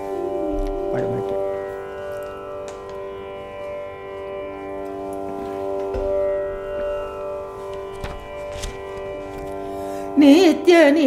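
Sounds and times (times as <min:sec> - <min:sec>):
tanpura drone: 0:00.0 - 0:11.0.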